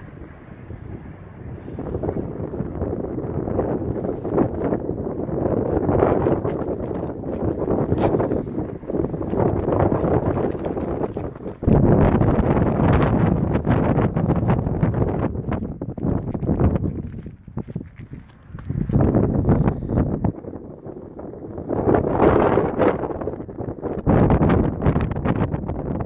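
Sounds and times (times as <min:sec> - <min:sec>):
wind buffeting microphone: 0:00.0 - 0:26.0
footsteps on roof shingles: 0:05.5 - 0:19.2.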